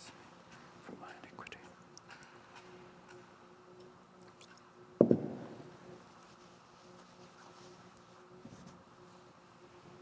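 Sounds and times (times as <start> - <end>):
faint steady hum: 0.0 - 10.0
man whispering a prayer: 0.8 - 1.8.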